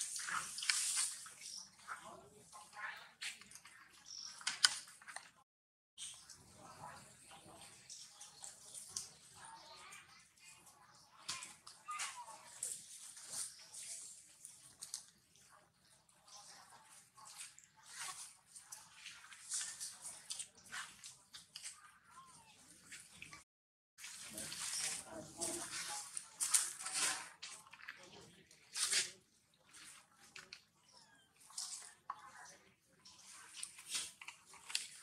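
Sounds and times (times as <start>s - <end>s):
leaves and twigs rustling: 24.0s - 28.1s.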